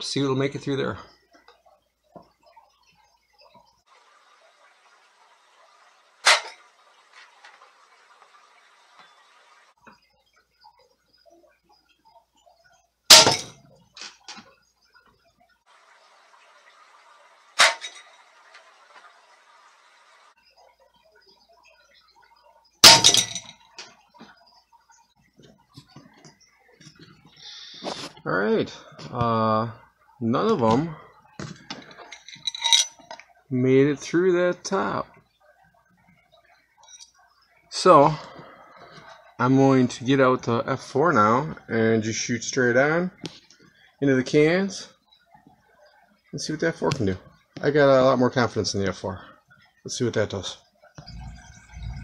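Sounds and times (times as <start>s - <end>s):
pellets striking steel cans: 13.1s - 13.6s, 22.8s - 23.5s.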